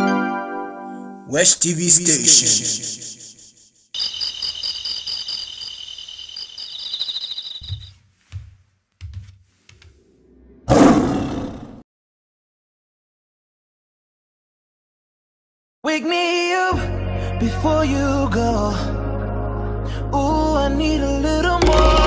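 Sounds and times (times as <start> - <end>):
shimmering high tone: 2.9 - 7.9
roar-like burst: 10.5 - 11.8.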